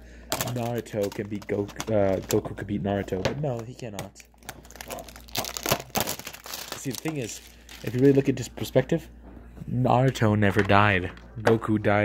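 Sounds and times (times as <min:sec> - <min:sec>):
plastic packaging crinkling: 0:00.3 - 0:02.8, 0:03.4 - 0:08.6.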